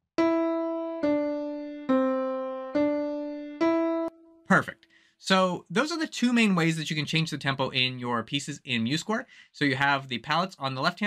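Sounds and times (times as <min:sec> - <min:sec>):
piano playing slow single notes: 0:00.0 - 0:04.5.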